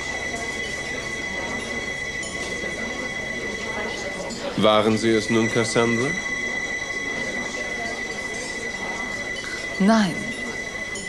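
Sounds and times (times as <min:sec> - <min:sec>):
high-pitched whine: 0:00.0 - 0:11.0
tape hiss and low hum: 0:00.0 - 0:11.0.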